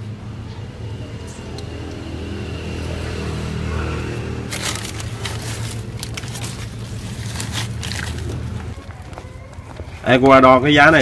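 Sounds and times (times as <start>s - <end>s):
plant stems scraping and rustling: 4.0s - 8.8s.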